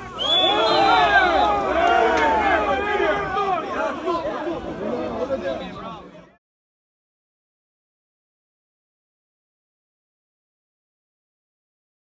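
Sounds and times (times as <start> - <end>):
spectators chattering: 0.0 - 6.4.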